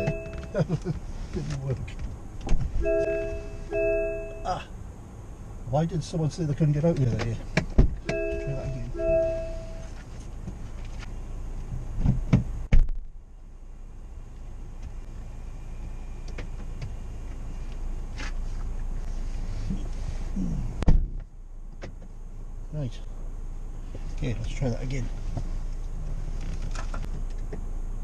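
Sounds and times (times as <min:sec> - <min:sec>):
car electronic chime: 0:00.0 - 0:00.6, 0:02.8 - 0:04.5, 0:08.1 - 0:09.9
car door clunks and thumps: 0:00.0 - 0:04.3, 0:06.9 - 0:09.8, 0:11.8 - 0:13.0, 0:20.8 - 0:22.2.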